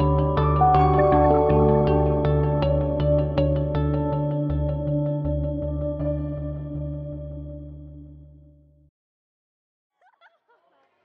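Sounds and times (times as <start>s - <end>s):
laughter: 10.0s - 10.8s.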